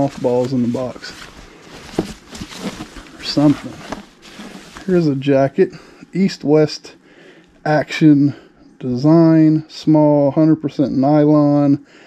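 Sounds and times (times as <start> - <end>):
nylon jacket rustling: 0.0 - 5.4.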